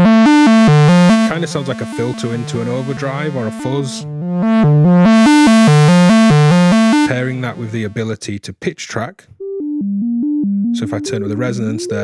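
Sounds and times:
overdriven synthesizer note sequence: 0:00.0 - 0:07.9, 0:09.4 - 0:12.0.

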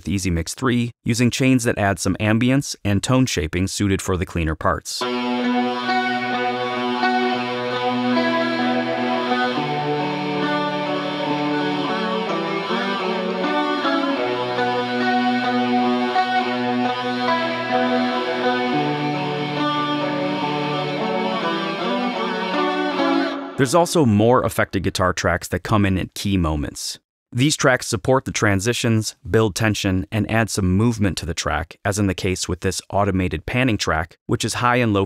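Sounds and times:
clean electric guitar: 0:05.0 - 0:24.0.

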